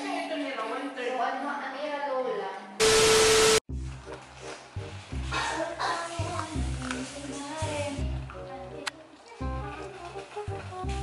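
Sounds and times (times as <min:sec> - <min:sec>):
test-tone beep: 0:02.8 - 0:03.6
tv static: 0:02.8 - 0:03.7.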